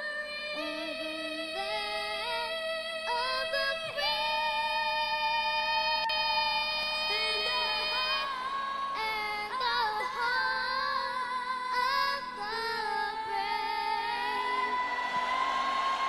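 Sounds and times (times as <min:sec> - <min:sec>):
girls singing an anthem: 0:00.0 - 0:16.0.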